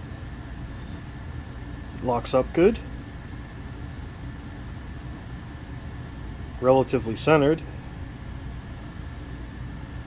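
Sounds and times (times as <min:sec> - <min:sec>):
low background rumble and hiss: 0:00.0 - 0:10.0.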